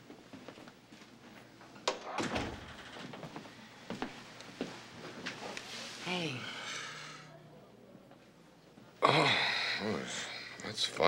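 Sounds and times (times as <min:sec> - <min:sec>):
door closing thud: 0:01.9 - 0:03.3.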